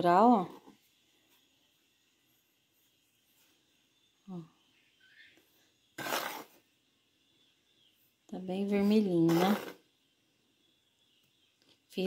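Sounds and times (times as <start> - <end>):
spoon scooping dry powder: 5.8 - 6.6, 9.0 - 9.9.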